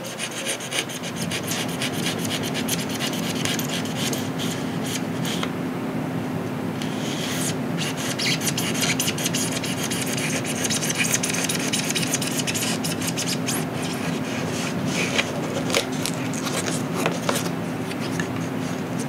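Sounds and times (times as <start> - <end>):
knife scraping balsa and foam: 6.9 - 18.5.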